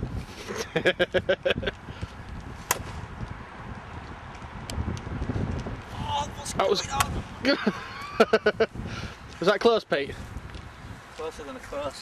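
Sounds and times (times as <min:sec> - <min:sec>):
wind rumbling on microphone: 0:00.0 - 0:12.0
golf club striking ball: 0:02.6 - 0:03.0.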